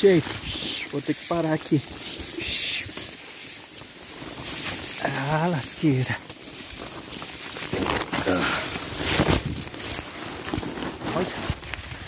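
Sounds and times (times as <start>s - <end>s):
leafy branches rustling: 0.0s - 12.0s.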